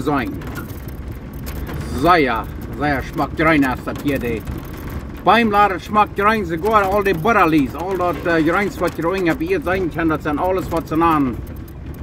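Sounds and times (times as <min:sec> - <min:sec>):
low vehicle engine and road rumble: 0:00.0 - 0:12.0.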